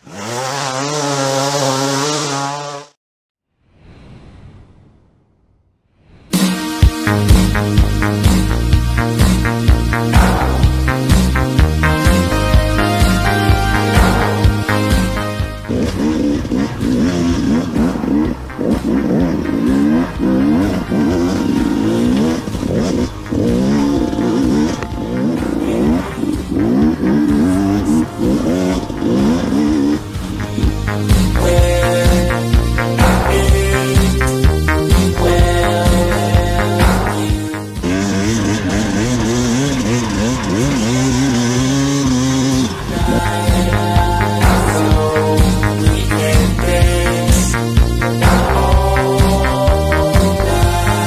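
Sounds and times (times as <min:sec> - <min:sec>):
motorcycle engine revving: 0:00.0 - 0:03.0, 0:06.8 - 0:51.0.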